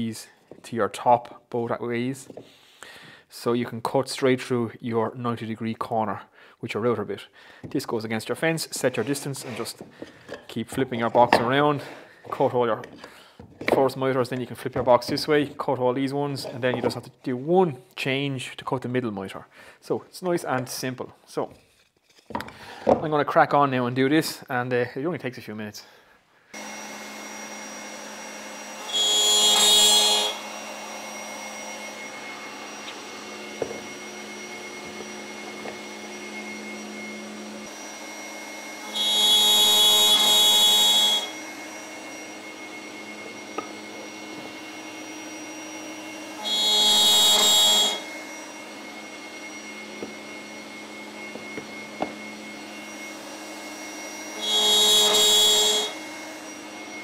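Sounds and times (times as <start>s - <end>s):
router cutting wood: 7.7s - 17.2s, 26.5s - 57.0s.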